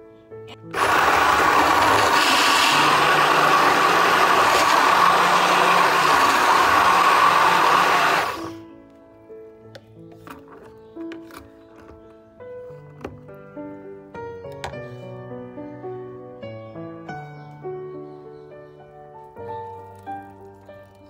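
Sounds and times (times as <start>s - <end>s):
hand blender running: 0.6s - 8.6s.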